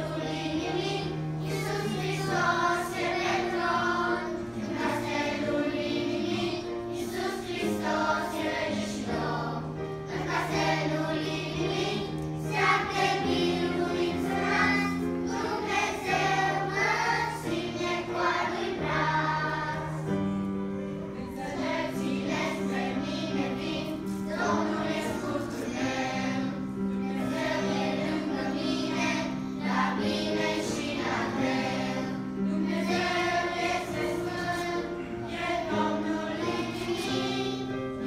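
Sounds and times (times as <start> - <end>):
children's choir singing: 0.0 - 38.0
sustained keyboard chords: 0.0 - 38.0.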